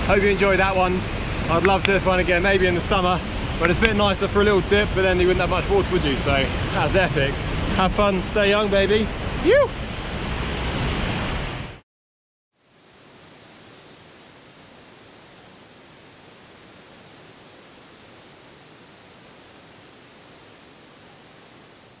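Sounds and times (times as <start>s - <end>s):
waterfall and river rushing: 0.0s - 11.8s, 12.6s - 22.0s.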